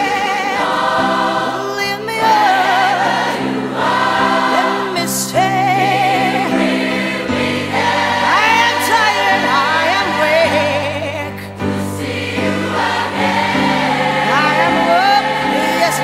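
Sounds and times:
gospel choir singing: 0.0s - 16.0s.

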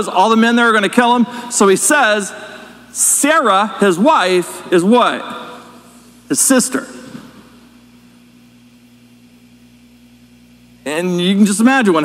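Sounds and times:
echo of spoken word: 0.0s - 7.4s
low hum with hiss: 0.0s - 12.0s.

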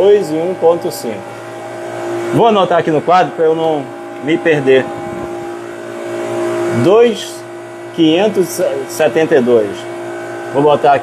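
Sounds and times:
refrigeration unit humming: 0.0s - 11.0s.

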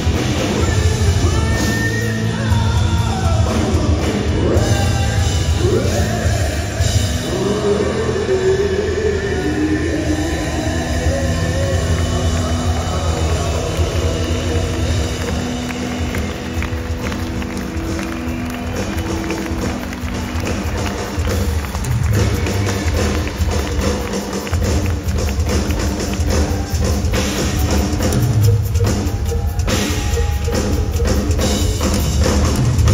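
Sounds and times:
heavy drums: 0.0s - 32.9s
heavy metal band playing: 0.0s - 32.9s
held guitar and keyboard notes: 26.2s - 32.9s.

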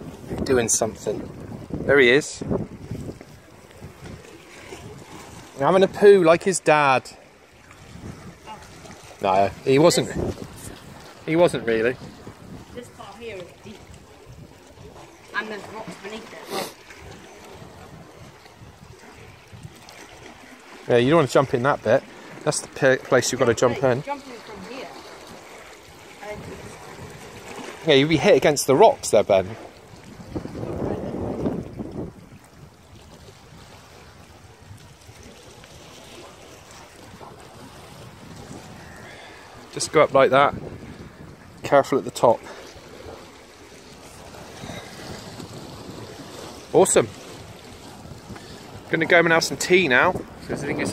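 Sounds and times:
wind rumble on microphone: 0.0s - 6.0s, 7.6s - 15.1s, 16.9s - 20.4s, 25.9s - 27.6s, 29.0s - 50.9s
water washing against rocks: 0.0s - 50.9s.

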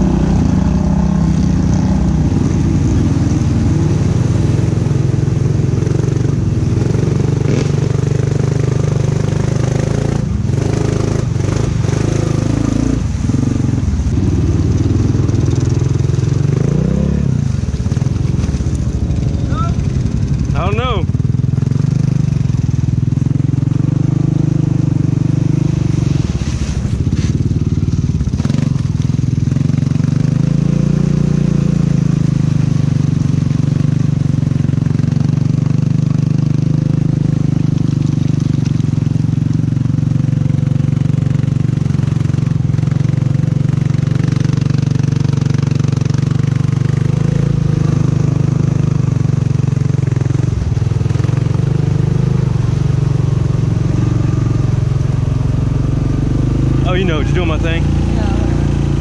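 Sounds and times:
atv engine running: 0.0s - 59.0s.

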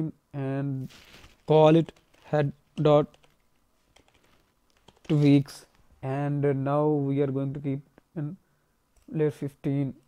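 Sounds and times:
keyboard typing: 1.0s - 5.6s.

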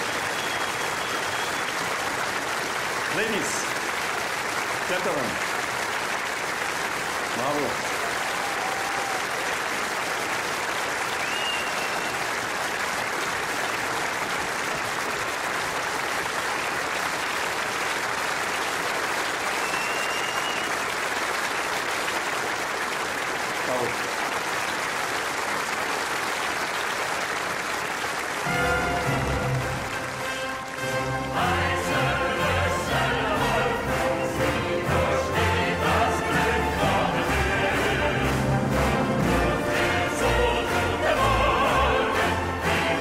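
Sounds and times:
high whistles: 0.0s - 1.9s, 11.1s - 12.3s, 19.5s - 20.8s
audience applauding: 0.0s - 43.0s
orchestra playing: 3.1s - 3.7s, 28.4s - 43.0s.

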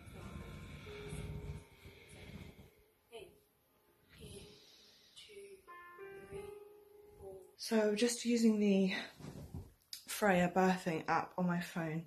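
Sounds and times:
woman breathing heavily: 0.0s - 3.0s.

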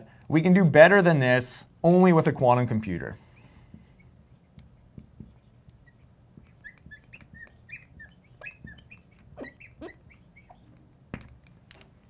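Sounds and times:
marker squeaking on glass: 3.2s - 10.8s.

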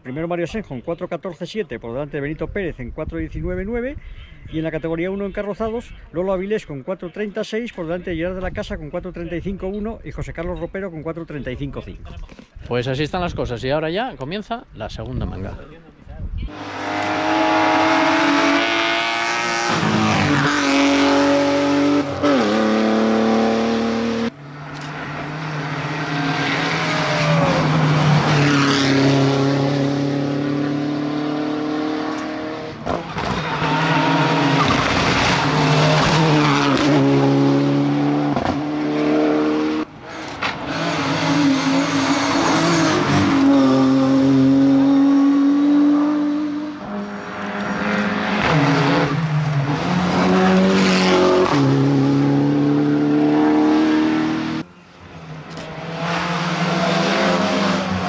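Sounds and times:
race car engines revving: 16.5s - 58.0s.

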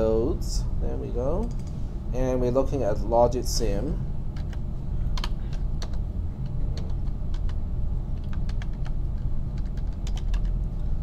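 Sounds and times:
steady low hum: 0.0s - 11.0s
keyboard typing clicks: 8.2s - 10.6s.

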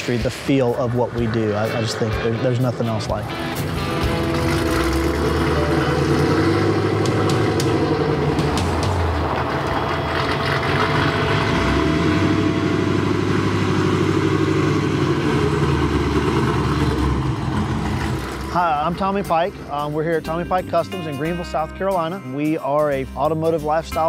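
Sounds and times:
truck engine running: 0.0s - 21.6s.

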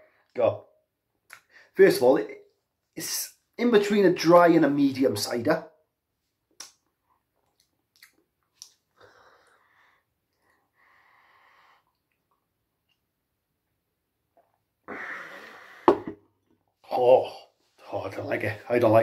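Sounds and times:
man exhaling oh: 14.9s - 16.1s
glass knocking on table: 15.9s - 16.2s.

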